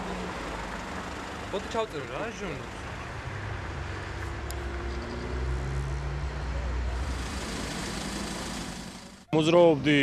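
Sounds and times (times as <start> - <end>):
road traffic noise: 0.0 - 10.0
vehicle engine running: 6.8 - 9.3.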